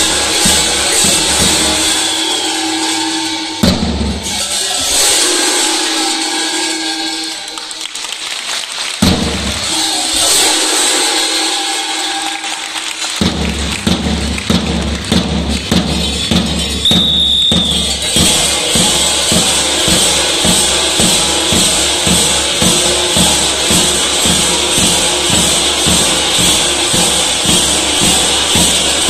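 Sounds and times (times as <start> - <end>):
large drums beating: 0.0 - 7.5, 9.0 - 29.0
costume bells clanging: 0.0 - 29.0.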